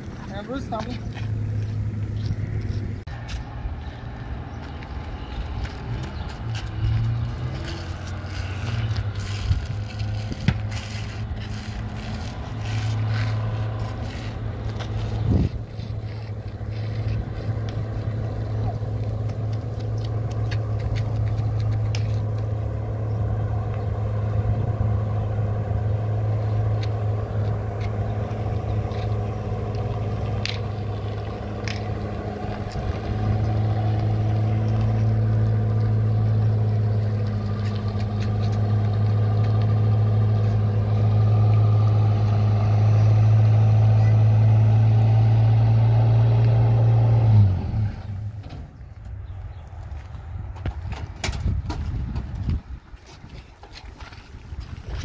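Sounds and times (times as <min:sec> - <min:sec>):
truck engine idling: 0:00.0 - 0:52.9.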